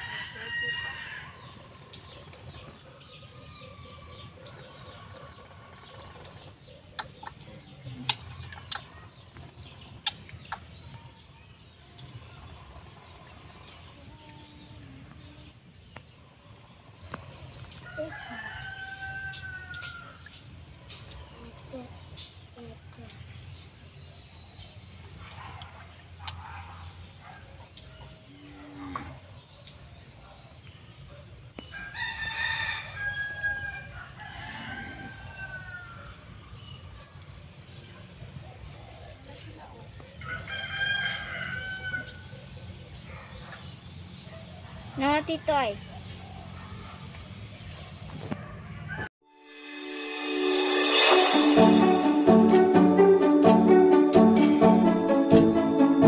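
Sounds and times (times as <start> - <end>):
rooster crowing: 0.0 - 1.6, 17.8 - 20.2, 31.7 - 36.2, 40.2 - 42.4.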